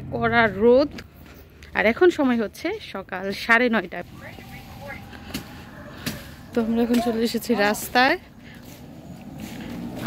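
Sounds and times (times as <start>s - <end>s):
faint road traffic hum: 0.0s - 10.0s.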